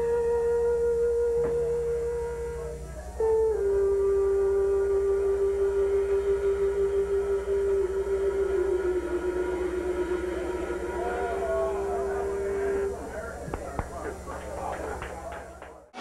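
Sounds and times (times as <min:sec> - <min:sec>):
electric instrument long held note: 0:00.0 - 0:13.4
low amplifier hum: 0:00.0 - 0:16.0.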